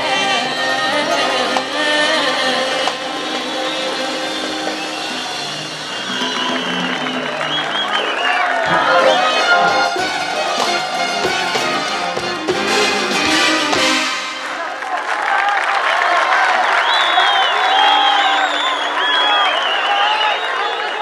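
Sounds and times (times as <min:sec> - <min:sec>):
audience applauding and cheering: 0:02.7 - 0:21.0
orchestra with brass playing: 0:08.6 - 0:14.7.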